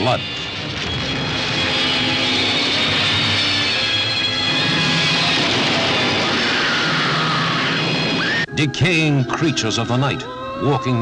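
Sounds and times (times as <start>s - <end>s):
dense roaring soundtrack: 0.0s - 8.5s.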